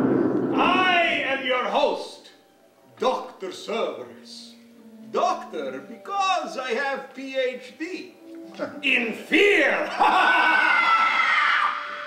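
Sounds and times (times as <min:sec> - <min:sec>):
person screaming: 0:09.9 - 0:12.0.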